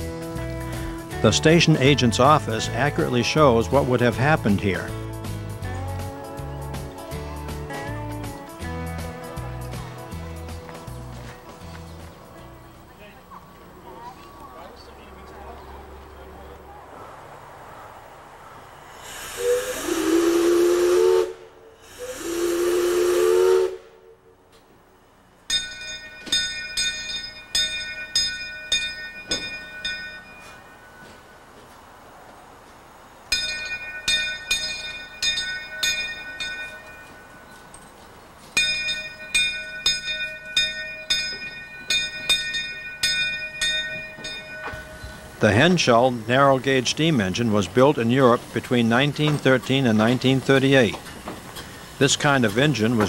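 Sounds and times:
locomotive bell ringing: 0.0s - 5.9s, 25.4s - 31.9s, 33.2s - 51.2s, 51.9s - 53.0s
steam locomotive whistle blasts: 18.9s - 24.4s.

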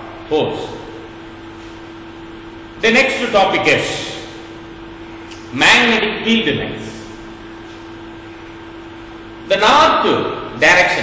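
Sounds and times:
low hum: 0.0s - 2.8s.

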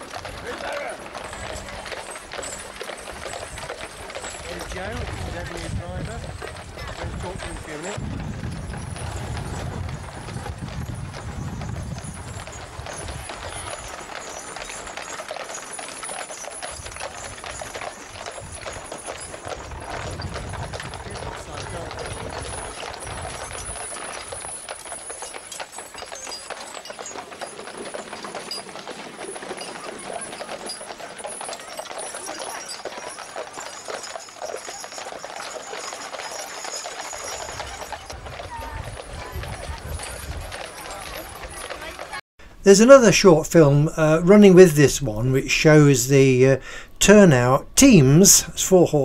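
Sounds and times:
horse hooves clip-clopping: 0.0s - 45.7s.

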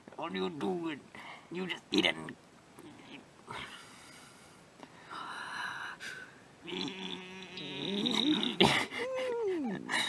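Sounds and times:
person humming wavering: 6.6s - 10.0s
person whining: 6.6s - 10.0s.

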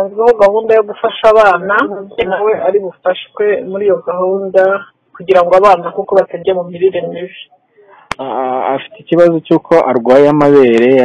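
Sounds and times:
person speaking: 0.0s - 11.0s.

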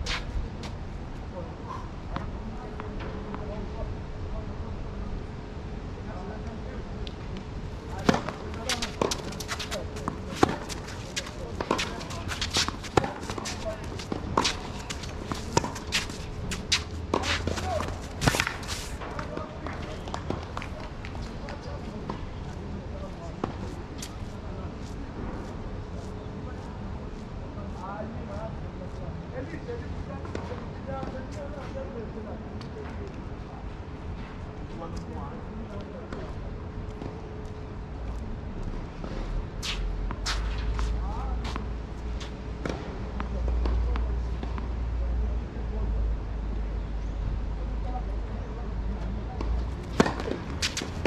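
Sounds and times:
shoes scuffing on court: 0.0s - 0.8s, 7.9s - 21.3s, 39.1s - 42.9s, 49.8s - 51.0s
tennis ball bouncing: 7.9s - 18.7s, 49.4s - 51.0s
racket hitting tennis ball: 7.9s - 19.0s, 49.8s - 51.0s.

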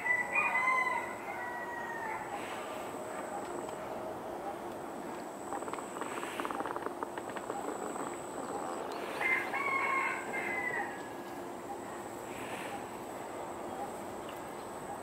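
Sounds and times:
rooster crowing: 0.0s - 2.4s, 9.1s - 11.3s
outdoor background: 0.0s - 15.0s
faint rapid clicks: 4.7s - 8.8s.

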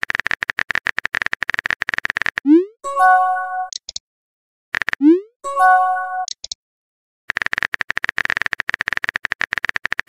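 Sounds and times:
bright electronic chime: 2.8s - 3.7s, 5.4s - 6.3s.

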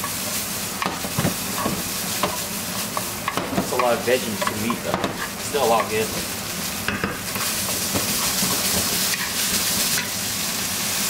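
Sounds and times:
meat sizzling in a frying pan: 0.0s - 11.0s
wooden spatula scraping a pan: 0.9s - 10.1s.

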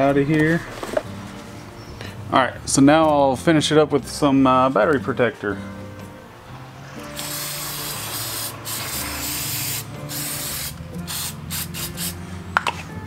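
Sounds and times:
aerosol can spraying: 7.1s - 12.2s.

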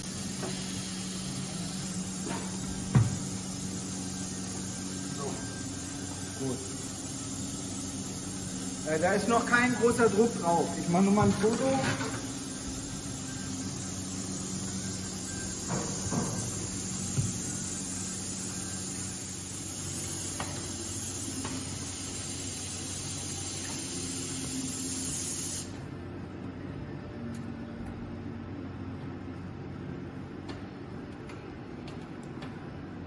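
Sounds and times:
compressed air hissing: 0.0s - 25.8s.

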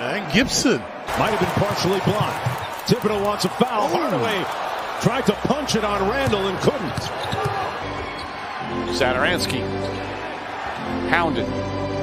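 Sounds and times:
arena noise: 0.0s - 11.1s.

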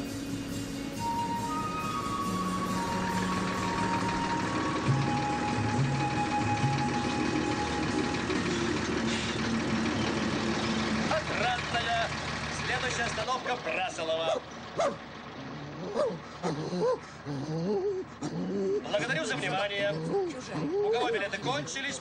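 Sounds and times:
film score melody: 0.0s - 13.5s
bus diesel engine running: 0.0s - 22.0s
voices: 2.7s - 22.0s.

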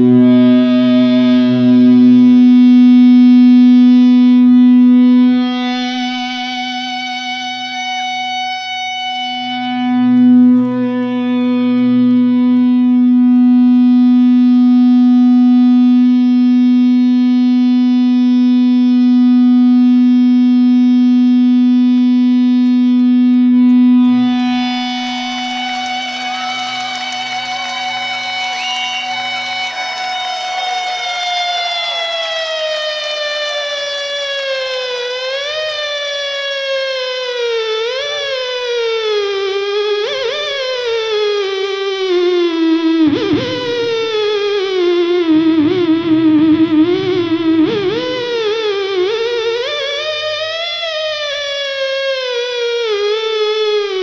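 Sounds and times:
guitar whammy bar pitch swoops: 0.0s - 3.6s
electric guitar sustained notes: 0.0s - 54.0s.

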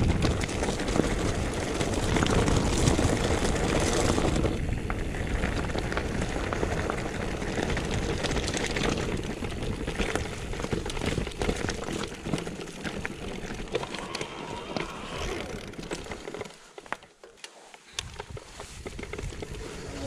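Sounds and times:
bike clattering and rattling: 0.0s - 20.0s
tyres crunching over gravel: 0.0s - 20.0s.

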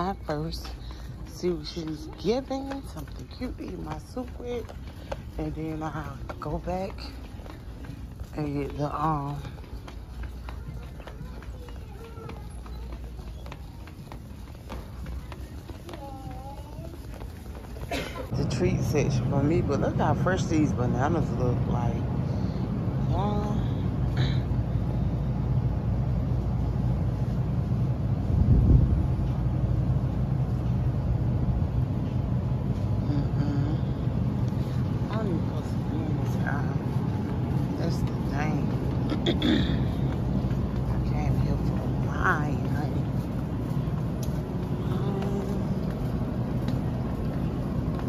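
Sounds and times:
cart wheels rumbling: 0.0s - 48.0s.

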